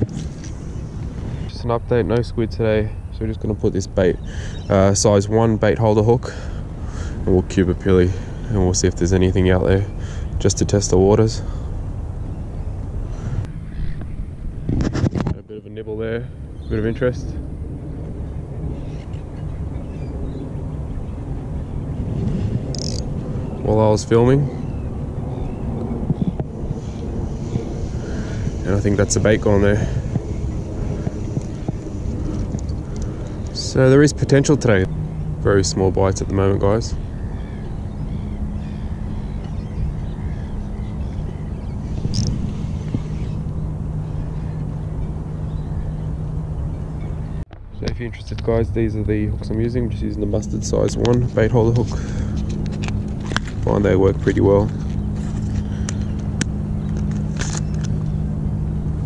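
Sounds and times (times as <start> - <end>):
faint bird calls: 0.0 - 5.2, 6.0 - 14.3, 16.2 - 33.8, 34.4 - 47.4, 50.3 - 58.3
low engine-like hum: 0.0 - 59.0
low outdoor rumble: 0.0 - 59.0.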